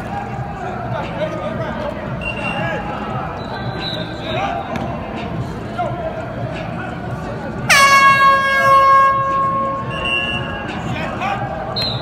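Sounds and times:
air horn blast: 0:07.7 - 0:10.5.

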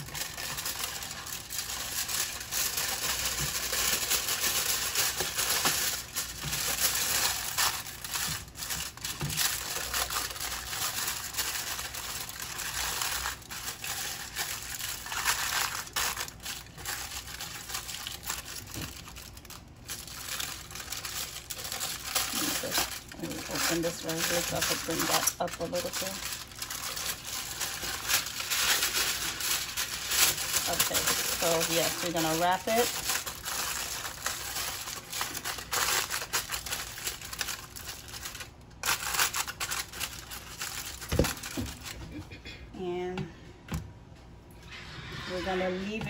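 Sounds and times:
aluminium foil crinkling: 0:00.0 - 0:42.2.

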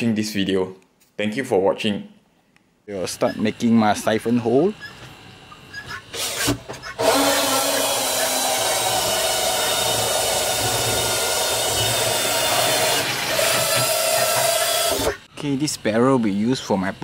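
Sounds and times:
cordless drill boring plastic: 0:06.2 - 0:15.2.

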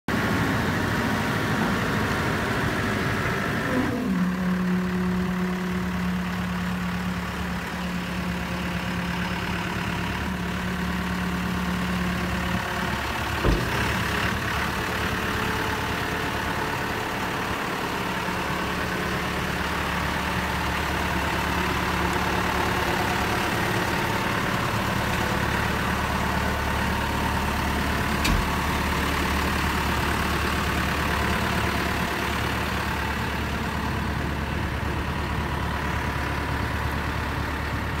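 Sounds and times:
diesel engine idling: 0:00.1 - 0:38.0.

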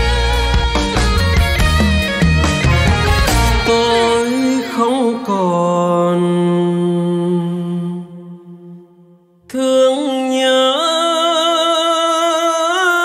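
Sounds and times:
live band chords: 0:00.0 - 0:05.3.

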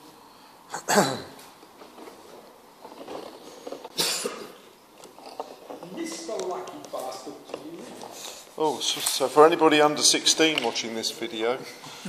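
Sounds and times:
sharp cough: 0:00.7 - 0:01.4, 0:04.0 - 0:04.6.

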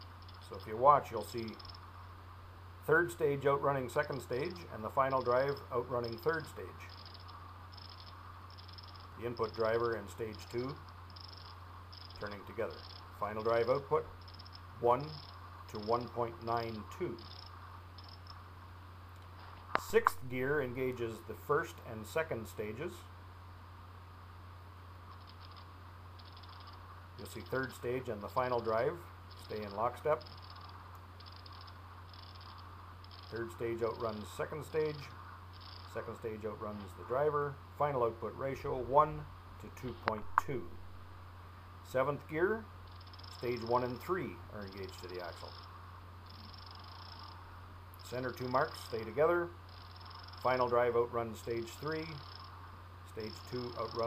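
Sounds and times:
steady low hum: 0:00.0 - 0:54.0
hub pawls ratcheting: 0:01.4 - 0:01.8, 0:04.0 - 0:18.4, 0:25.1 - 0:27.8, 0:29.3 - 0:34.3, 0:34.9 - 0:36.0, 0:42.8 - 0:44.0, 0:44.9 - 0:47.4, 0:49.7 - 0:50.7, 0:51.9 - 0:52.5.

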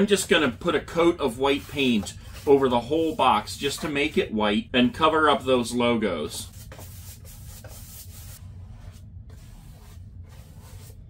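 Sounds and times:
paintbrush brushing on cardboard: 0:01.2 - 0:03.8, 0:06.5 - 0:11.0.

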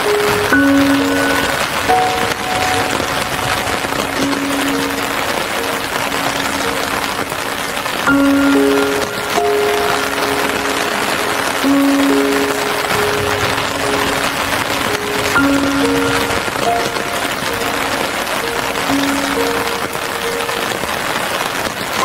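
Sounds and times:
rain hissing: 0:00.0 - 0:22.0
slow calm music: 0:00.0 - 0:22.0.

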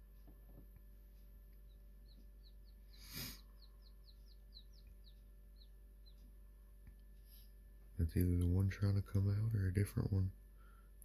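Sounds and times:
chicks peeping: 0:01.2 - 0:07.0.

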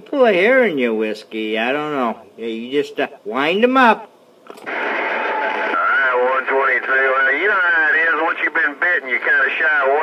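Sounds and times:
radio static: 0:04.6 - 0:10.0
man talking over radio: 0:05.8 - 0:10.0.

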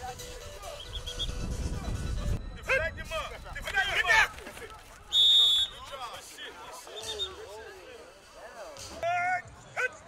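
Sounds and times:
background chatter: 0:03.3 - 0:10.0.

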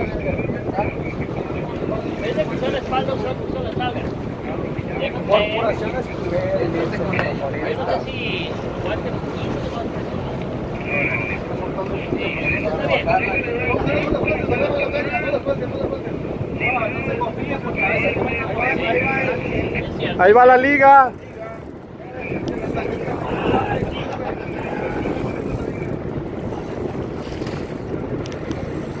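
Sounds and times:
boat engine running: 0:00.0 - 0:29.0
indistinct voices talking: 0:00.0 - 0:29.0
wind buffeting microphone: 0:00.0 - 0:29.0.

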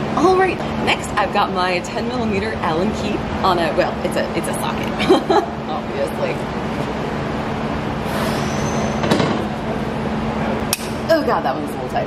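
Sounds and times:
workshop hum: 0:00.0 - 0:12.0.

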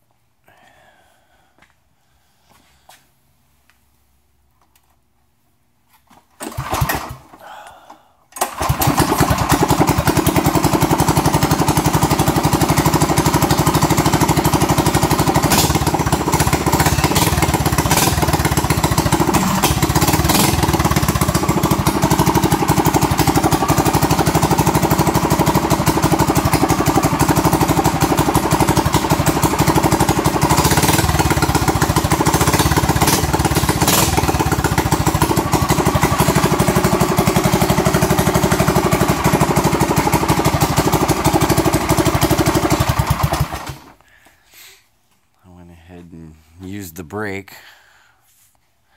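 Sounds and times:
engine running steadily: 0:08.4 - 0:44.0
exhaust crackles: 0:11.4 - 0:44.2.

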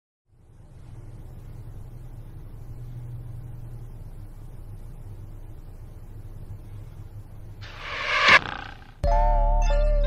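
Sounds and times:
faint low hum: 0:00.3 - 0:10.0
rising swell of music noise: 0:07.6 - 0:08.6.

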